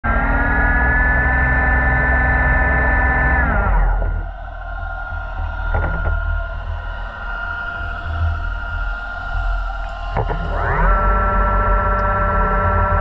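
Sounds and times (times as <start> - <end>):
underwater motor whine: 0.0 - 13.0.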